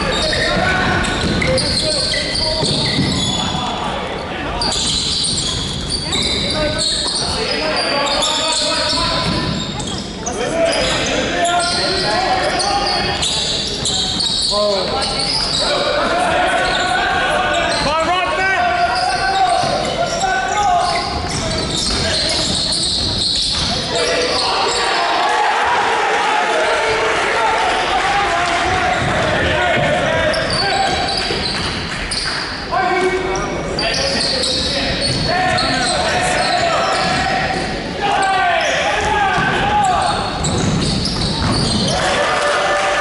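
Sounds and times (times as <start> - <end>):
voices calling in echoing hall: 0.0 - 43.0
basketball bouncing on wooden court: 0.1 - 3.6, 9.1 - 10.0, 20.8 - 23.9, 28.5 - 31.8, 39.3 - 41.9.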